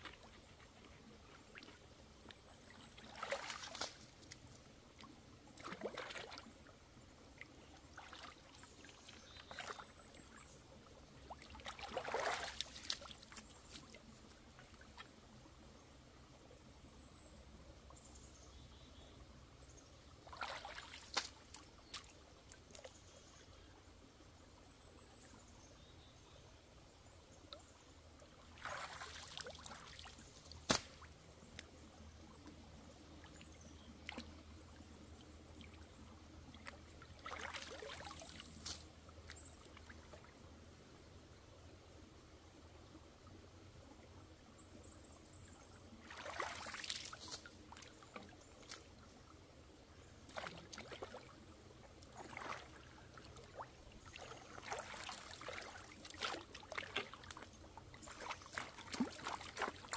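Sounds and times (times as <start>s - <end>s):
water splashing and sloshing: 0.0s - 15.2s, 20.1s - 23.0s, 27.5s - 40.6s, 45.9s - 49.3s, 50.0s - 59.9s.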